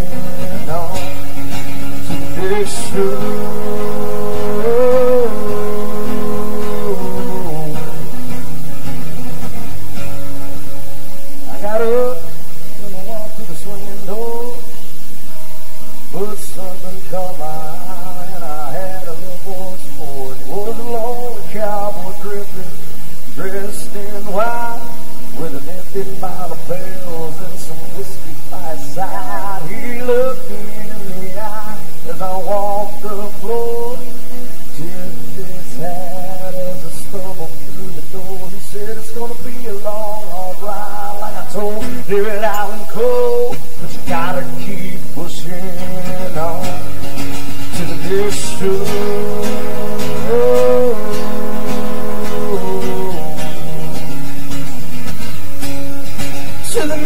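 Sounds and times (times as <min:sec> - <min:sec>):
man singing: 0:00.0 - 0:08.7, 0:11.4 - 0:14.9, 0:16.1 - 0:54.8, 0:56.6 - 0:57.0
acoustic guitars playing: 0:00.0 - 0:57.0.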